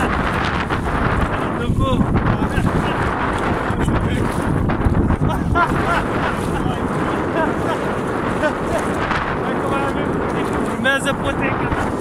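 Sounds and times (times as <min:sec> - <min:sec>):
water sloshing around wading legs: 0:00.0 - 0:12.0
wind buffeting microphone: 0:00.0 - 0:12.0.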